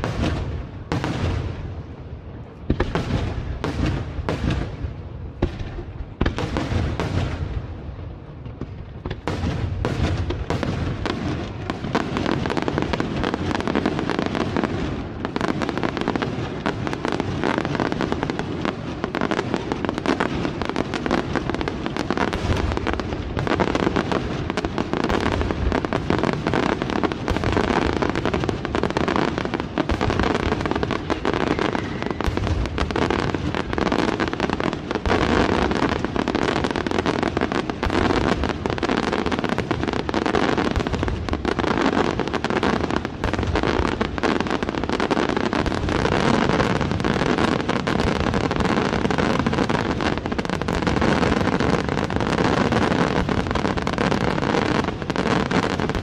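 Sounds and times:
fireworks crackling: 0:00.0 - 0:56.0.

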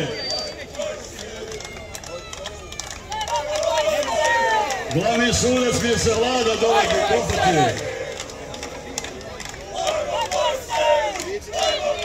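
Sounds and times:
murmur of voices: 0:00.0 - 0:12.0
man speaking: 0:04.9 - 0:07.8.

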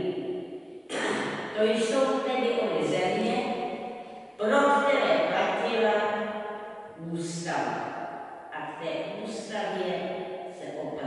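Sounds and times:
elderly woman lecturing: 0:00.0 - 0:00.2, 0:00.9 - 0:03.5, 0:04.4 - 0:06.2, 0:06.9 - 0:07.8, 0:08.6 - 0:10.0, 0:10.6 - 0:11.0.

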